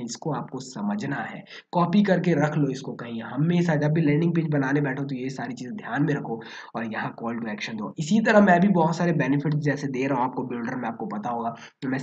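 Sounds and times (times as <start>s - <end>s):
man narrating: 0.0s - 12.0s.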